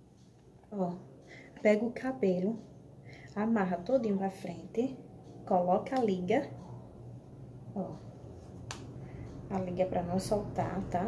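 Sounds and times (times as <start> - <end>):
elastic hair tie snapping: 8.6 - 9.0.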